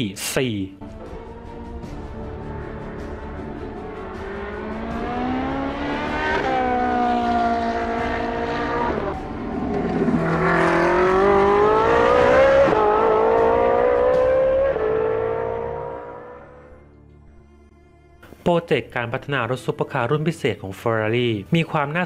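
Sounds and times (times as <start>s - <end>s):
race car accelerating hard: 2.5s - 16.8s.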